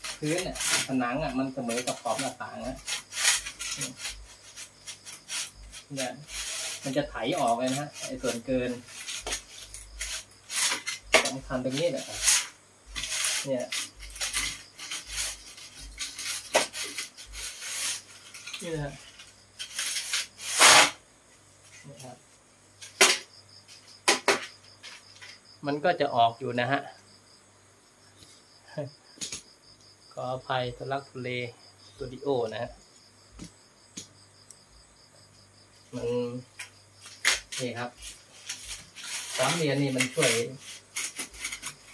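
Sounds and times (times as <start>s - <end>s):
cricket chirping: 0.0s - 41.9s
metal straightedge scraping wet render: 1.6s - 18.7s, 37.2s - 41.9s.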